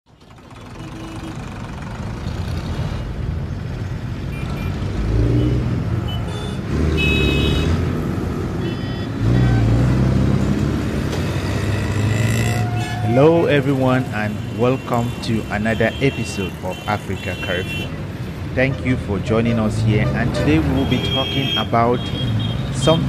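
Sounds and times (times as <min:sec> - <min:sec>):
vehicle engines running: 0:00.1 - 0:23.0.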